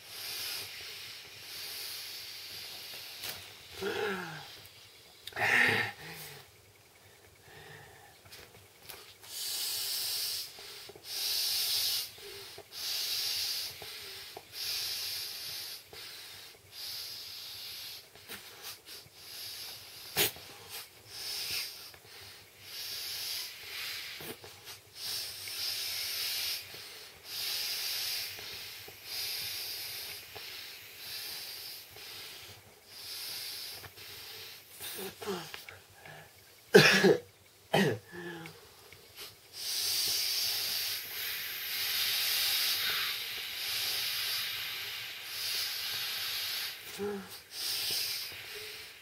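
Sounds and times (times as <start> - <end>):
breath blown into air valve: 0.0 - 4.6, 9.3 - 35.4, 39.1 - 49.0
person blowing into air mat: 39.2 - 49.0.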